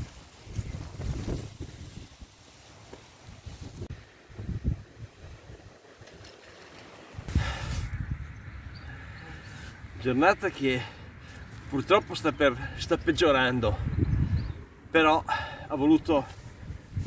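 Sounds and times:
wind buffeting microphone: 0.0 - 2.4, 3.2 - 6.2, 7.1 - 10.0, 13.5 - 14.8, 16.4 - 17.0.

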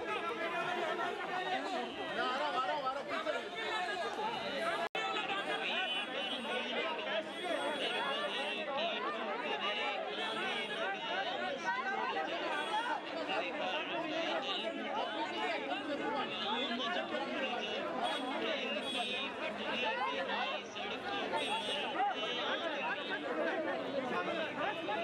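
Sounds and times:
crowd chatter: 0.0 - 25.0.

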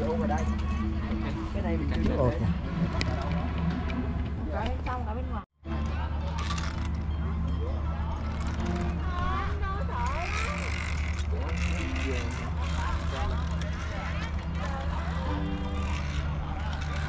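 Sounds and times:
indistinct chatter of people: 0.0 - 17.0.

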